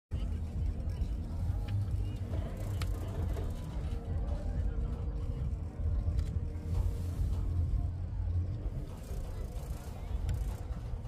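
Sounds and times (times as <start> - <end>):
faint voices: 0.1 - 11.0.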